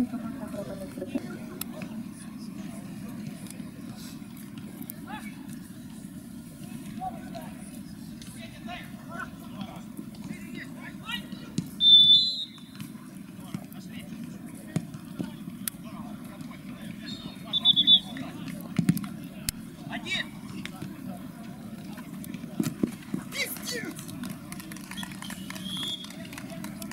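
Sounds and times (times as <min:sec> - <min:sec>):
referee's whistle blast: 0:11.8 - 0:12.7
players shouting: 0:23.2 - 0:24.0.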